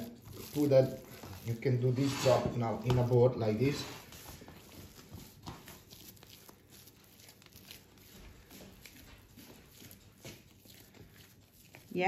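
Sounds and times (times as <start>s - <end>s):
dough being kneaded by hand: 0.0s - 12.0s.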